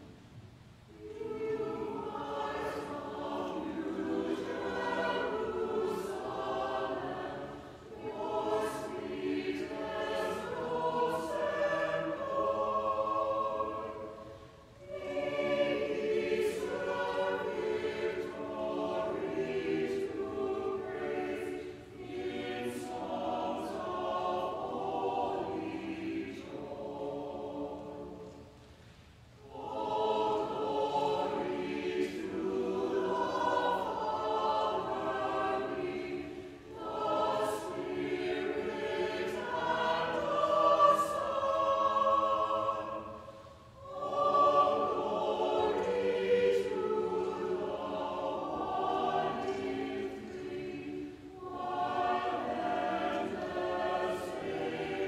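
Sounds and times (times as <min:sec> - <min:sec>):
church choir singing: 0:00.0 - 0:00.2, 0:00.8 - 0:55.0.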